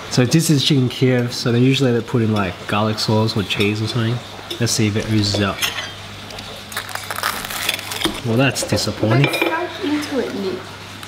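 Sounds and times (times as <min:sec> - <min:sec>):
cutlery crackling through crust: 0:04.5 - 0:09.6.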